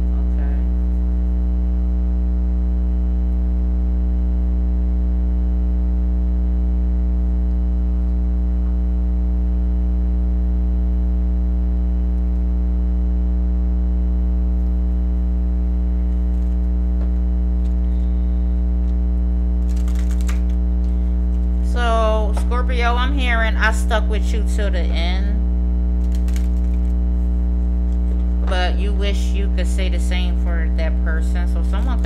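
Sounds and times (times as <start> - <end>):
loud electrical mains hum: 0.0 - 32.0.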